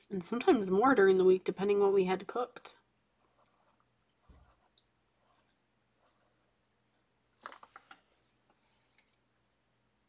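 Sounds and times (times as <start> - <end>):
marker scratching on paper: 3.2 - 6.6.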